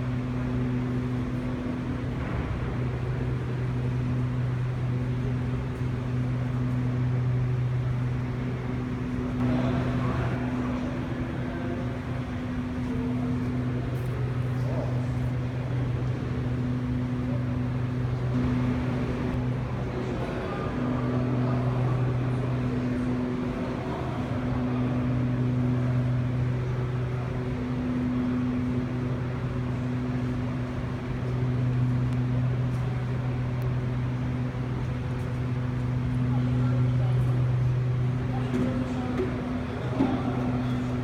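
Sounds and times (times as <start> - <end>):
continuous background noise: 0.0 - 41.0
low mechanical hum: 0.0 - 41.0.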